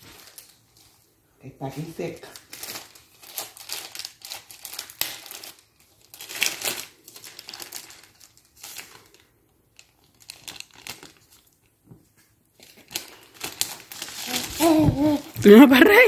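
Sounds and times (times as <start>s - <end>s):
wrapping paper crinkling: 0.0s - 1.2s, 1.8s - 16.0s.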